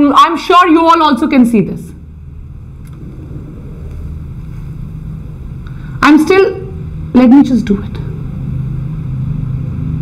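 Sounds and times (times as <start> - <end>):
low steady background rumble: 0.0 - 10.0.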